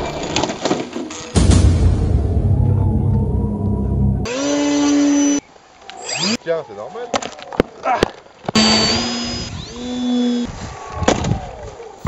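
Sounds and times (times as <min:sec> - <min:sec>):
high-pitched motor drone: 0:03.7 - 0:05.4, 0:08.6 - 0:10.5.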